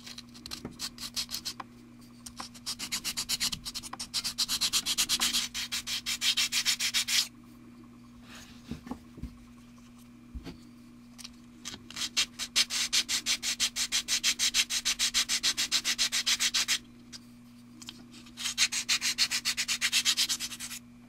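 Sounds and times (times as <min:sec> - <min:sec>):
sanding block scraping plastic: 0:00.8 - 0:01.6, 0:02.4 - 0:07.3, 0:11.9 - 0:16.8, 0:18.4 - 0:20.8.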